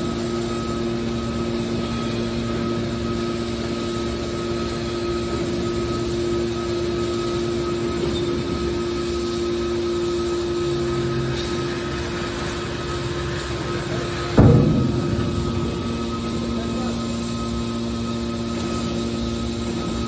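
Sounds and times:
hydraulic power unit humming: 0.0 - 20.0
baler lid banging shut: 14.4 - 16.8.

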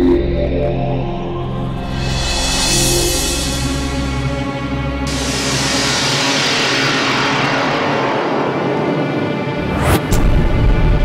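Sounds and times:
low music drone: 0.0 - 11.0.

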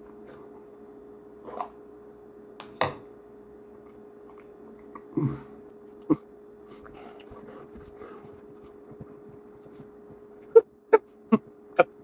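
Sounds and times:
faint steady hum: 0.0 - 12.0
man whimpering: 5.1 - 6.3.

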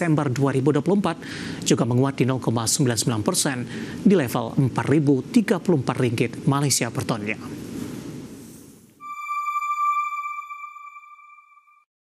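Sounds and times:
electronic chime tone: 9.0 - 11.9.

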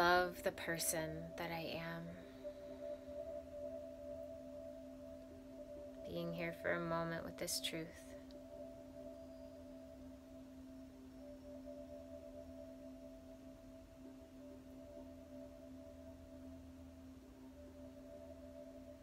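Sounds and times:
meditation drone with held tones: 0.0 - 19.0.

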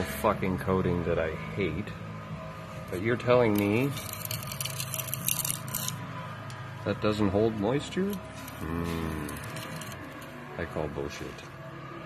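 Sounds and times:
metal scraper scraping steel: 3.3 - 6.1, 8.0 - 10.4.

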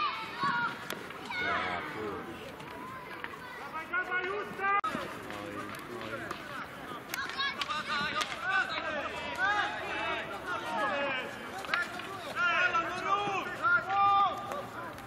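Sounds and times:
players shouting: 0.0 - 15.0.

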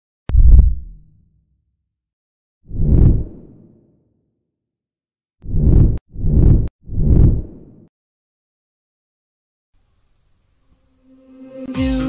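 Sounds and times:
deep boom: 0.3 - 1.1.

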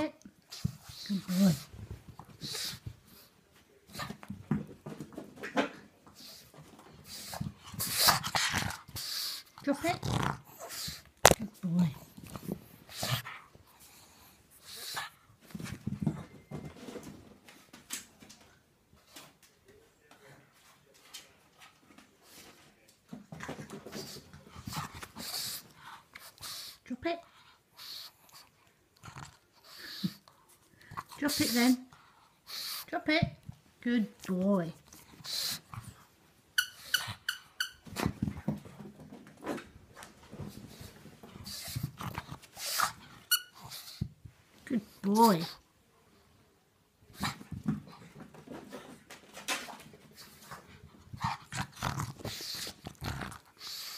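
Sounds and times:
dog playing fetch: 34.8 - 44.2.

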